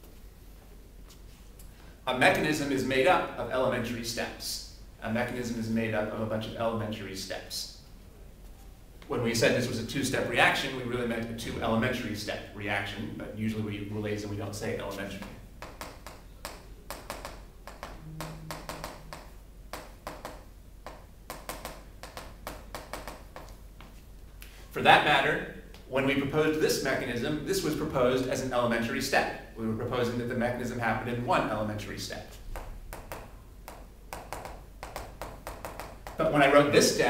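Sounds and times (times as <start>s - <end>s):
chalk tapping and scratching: 15.2s - 24.0s, 32.3s - 36.2s.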